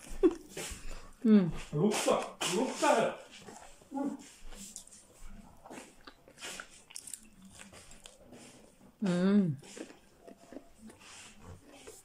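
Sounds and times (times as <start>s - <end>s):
person chewing crunchy food: 3.3s - 12.0s
person humming: 9.0s - 9.6s.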